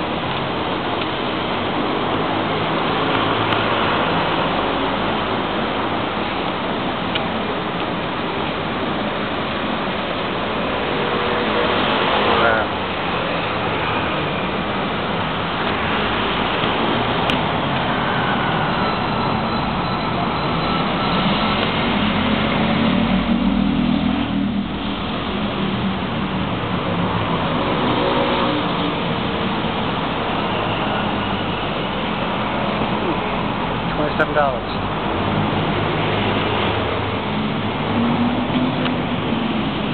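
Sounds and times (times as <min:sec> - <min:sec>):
cars driving past: 0:00.0 - 0:39.9
loud vehicle passing: 0:08.6 - 0:39.9.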